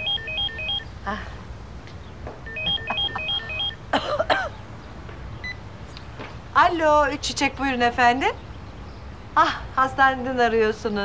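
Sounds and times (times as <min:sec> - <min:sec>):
mobile phone ringtone: 0:00.0 - 0:00.9, 0:02.5 - 0:03.9.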